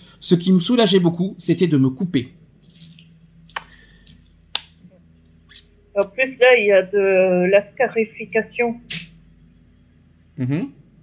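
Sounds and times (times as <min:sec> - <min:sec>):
faint low hum: 0:00.0 - 0:11.0
sharp short clicks: 0:02.7 - 0:04.8
person speaking: 0:05.5 - 0:09.1.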